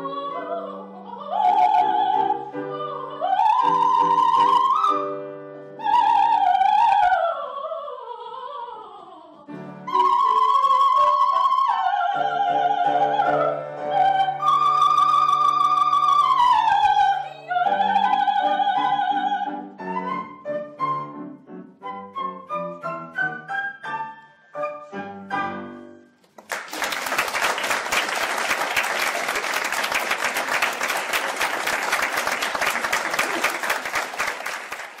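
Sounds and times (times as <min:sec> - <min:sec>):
soprano flute and piano piece: 0:00.0 - 0:08.4, 0:09.5 - 0:26.2
audience applauding: 0:26.3 - 0:35.0.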